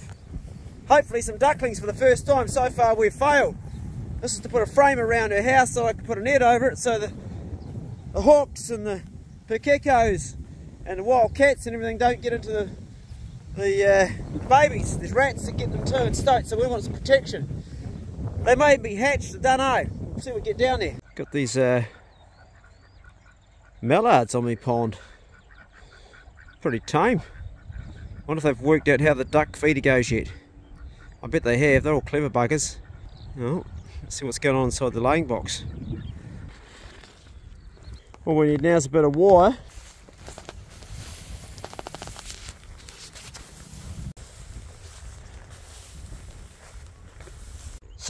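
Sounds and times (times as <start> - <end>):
footsteps through long grass: 0.0 - 2.6, 3.6 - 4.6, 12.7 - 13.6, 36.4 - 38.2, 39.3 - 48.0
wind buffeting microphone: 0.0 - 21.0, 25.2 - 48.0
man speaking: 0.9 - 3.6, 4.2 - 7.2, 8.2 - 12.8, 13.6 - 17.5, 18.4 - 21.9, 38.2 - 39.7
faint bird calls: 21.0 - 23.9, 24.9 - 28.4, 30.3 - 31.3, 39.6 - 48.0
chicken wire rustling and rattling: 39.9 - 43.9.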